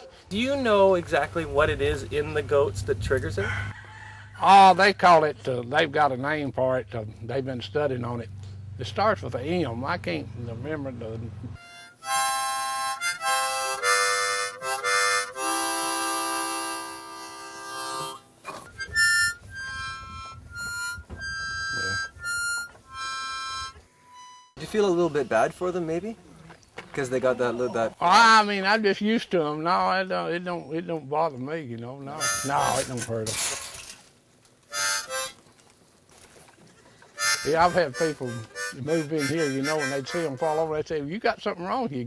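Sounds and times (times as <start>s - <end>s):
harmonica music: 11.5s - 25.2s, 32.1s - 33.2s, 34.7s - 35.5s, 37.1s - 41.0s.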